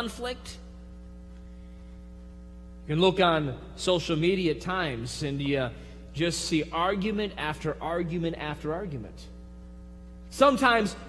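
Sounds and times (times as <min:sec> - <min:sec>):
man speaking: 0:00.0 - 0:00.7, 0:02.9 - 0:09.3, 0:10.3 - 0:11.0
electrical mains hum: 0:00.0 - 0:11.0.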